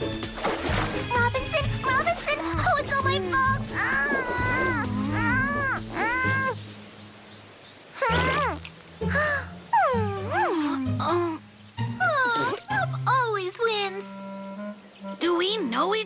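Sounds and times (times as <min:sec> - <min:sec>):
soft background music: 0:00.0 - 0:16.0
cartoon vocal sounds: 0:08.0 - 0:08.6.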